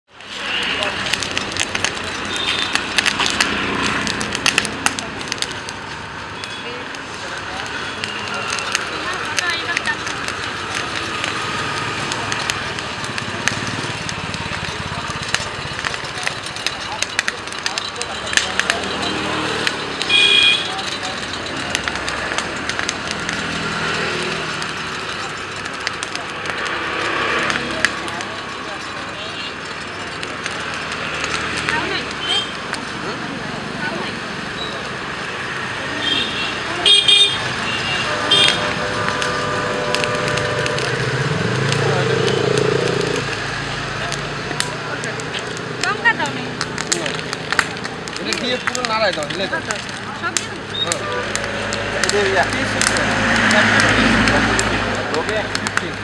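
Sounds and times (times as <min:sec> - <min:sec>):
passing traffic: 0:00.0 - 0:56.0
corn crackling over charcoal: 0:00.1 - 0:56.0
indistinct voices: 0:00.1 - 0:56.0.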